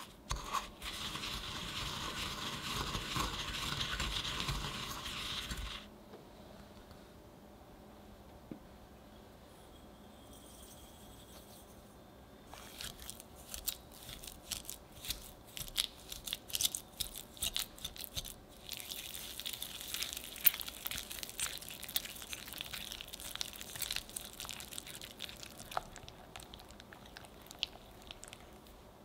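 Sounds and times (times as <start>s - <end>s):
whisk beating in a glass bowl: 0.8s - 5.9s.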